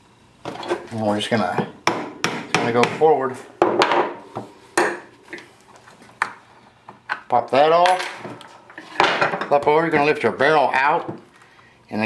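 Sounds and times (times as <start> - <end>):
tools handled on wooden workbench: 5.3 - 10.1.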